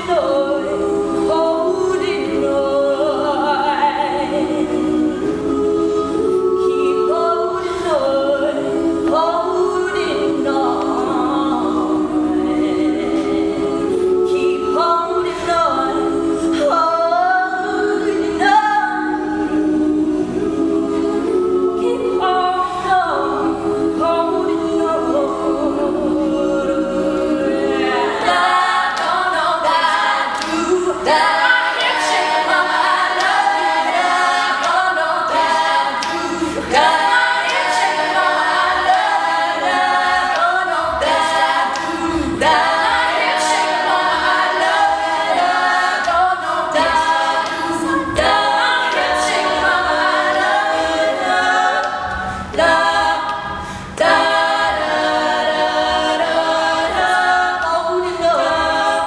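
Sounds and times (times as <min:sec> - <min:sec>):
female vocal group singing a cappella: 0:00.0 - 0:59.0.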